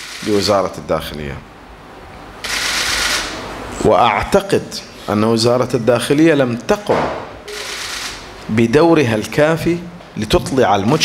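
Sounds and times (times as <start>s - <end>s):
man speaking: 0.2s - 1.5s, 3.8s - 7.6s, 8.5s - 11.0s.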